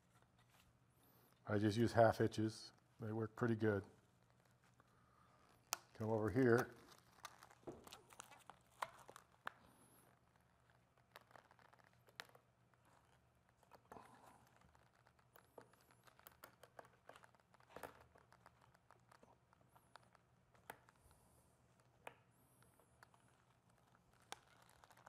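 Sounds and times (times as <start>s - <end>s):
dry moss rustling and crackling: 1.6s - 20.9s
small clicks and taps: 4.1s - 25.0s.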